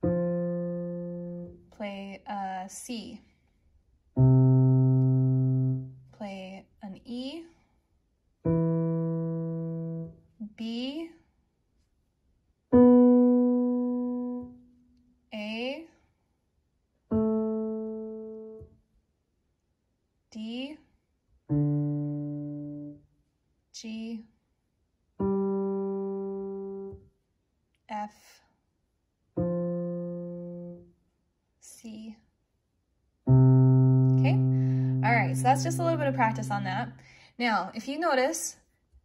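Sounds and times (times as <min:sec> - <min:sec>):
person speaking: 0:34.2 - 0:38.5.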